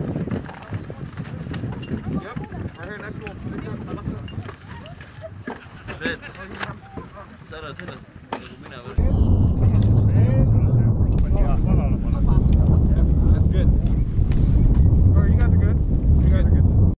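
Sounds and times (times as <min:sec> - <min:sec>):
people talking: 0:00.0 - 0:14.0, 0:15.0 - 0:16.7
loud low rumble: 0:09.0 - 0:17.0.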